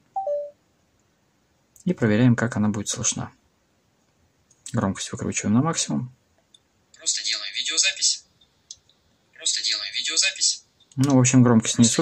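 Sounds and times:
short electronic beeps: 0:00.2 - 0:00.6.

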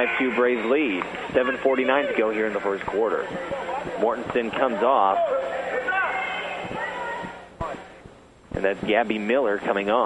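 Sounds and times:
background voices in gym: 0:00.0 - 0:10.0.

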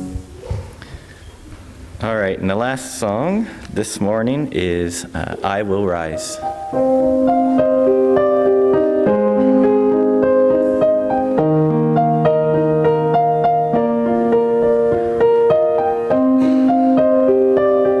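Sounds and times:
digital piano chords: 0:00.0 - 0:01.1, 0:01.7 - 0:18.0.

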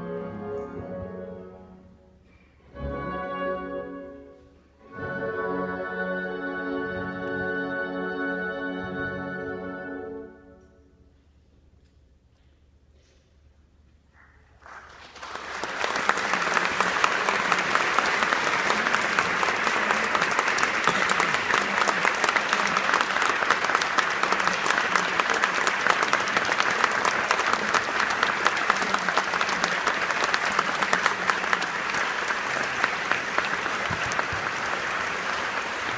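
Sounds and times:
audience applauding: 0:14.6 - 0:35.9.

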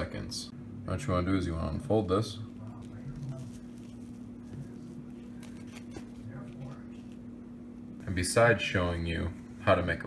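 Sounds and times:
steady low hum: 0:00.0 - 0:10.0
soft handling sounds: 0:02.5 - 0:07.5
wipe rustling: 0:02.6 - 0:07.4.

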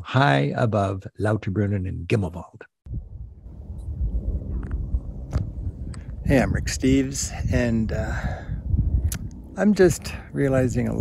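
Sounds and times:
wind buffeting microphone: 0:02.9 - 0:11.0.

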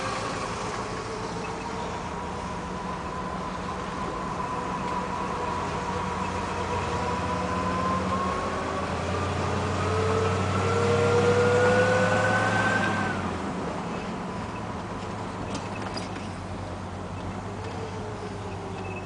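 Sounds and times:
car engine whine: 0:00.0 - 0:19.0.

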